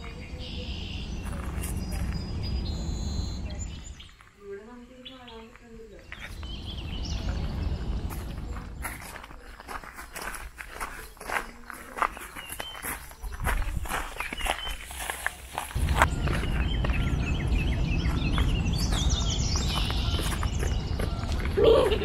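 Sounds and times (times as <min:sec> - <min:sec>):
steady low rumble: 0:00.0 - 0:04.1, 0:06.1 - 0:09.8, 0:15.6 - 0:22.0
footsteps walking: 0:01.2 - 0:02.4, 0:05.3 - 0:22.0.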